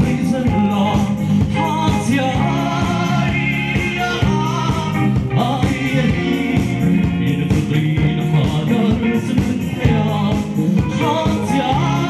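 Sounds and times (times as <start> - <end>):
live band with driving beat: 0.0 - 12.0
man singing into a microphone: 0.0 - 12.0.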